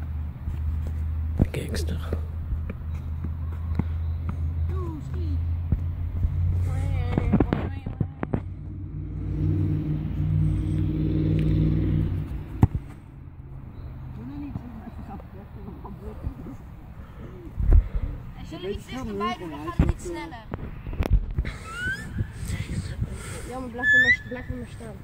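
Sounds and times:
vehicle engine: 0:00.0 - 0:19.5
low outdoor rumble: 0:00.0 - 0:23.8.

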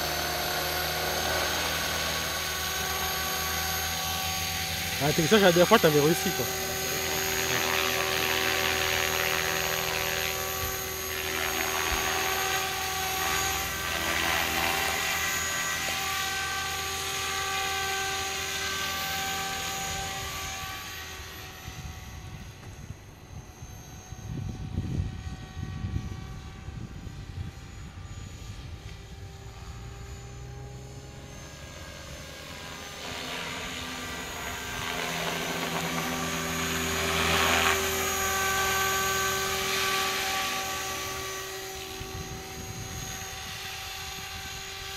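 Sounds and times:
model helicopter motor whine: 0:00.0 - 0:44.9
rotor blades buzzing: 0:00.0 - 0:44.9.

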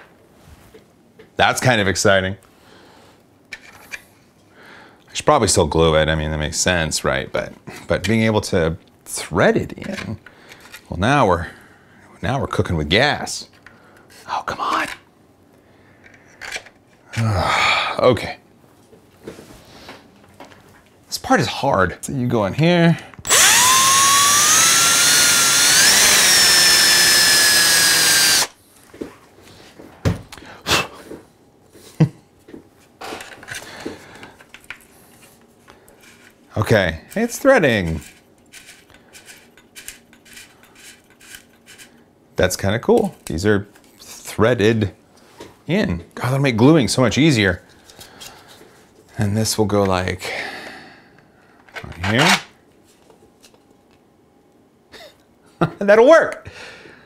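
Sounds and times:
cordless drill boring into plastic: 0:23.3 - 0:28.6.

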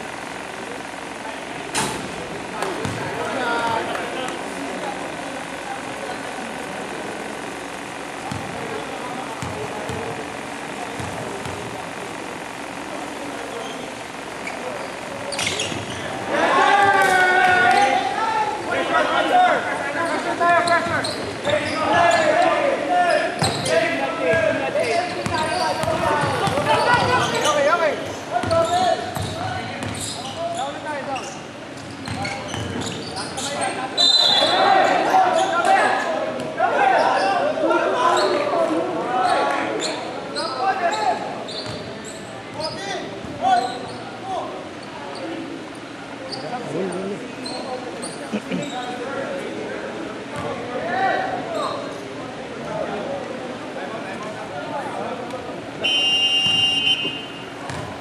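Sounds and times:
players calling out: 0:00.0 - 0:45.0
ball bouncing on hardwood court: 0:02.7 - 0:03.9, 0:08.2 - 0:08.6, 0:09.4 - 0:10.2, 0:11.0 - 0:11.7, 0:25.2 - 0:27.4, 0:28.4 - 0:30.0, 0:57.7 - 0:58.0.

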